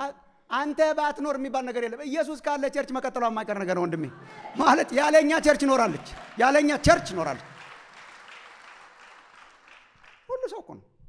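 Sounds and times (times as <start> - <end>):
congregation applauding: 4.1 - 10.6.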